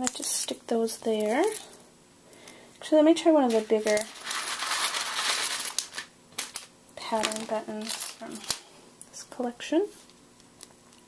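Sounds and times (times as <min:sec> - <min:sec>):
craft supplies rustling: 0:03.4 - 0:08.7.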